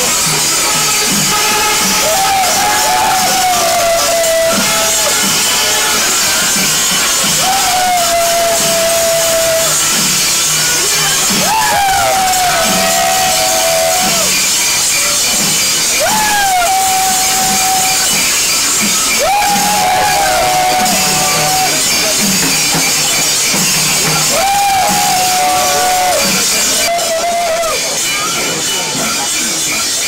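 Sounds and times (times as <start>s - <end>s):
steady drumming: 0.0s - 29.3s
high clashing cymbals: 0.0s - 30.0s
horns sounding long calls: 0.2s - 15.0s, 15.8s - 27.8s.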